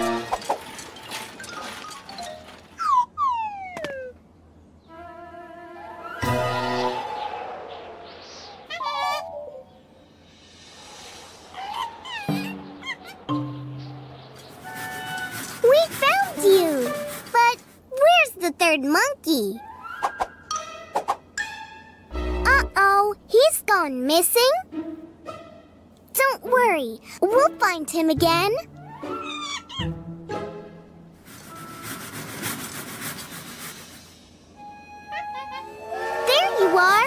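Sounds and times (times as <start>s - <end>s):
cartoon falling whistle glide: 6.0s - 7.4s
cartoon monkey calls: 8.7s - 9.4s, 11.5s - 13.4s, 28.8s - 30.0s
light background music: 19.6s - 22.8s, 24.3s - 32.1s, 34.5s - 37.0s.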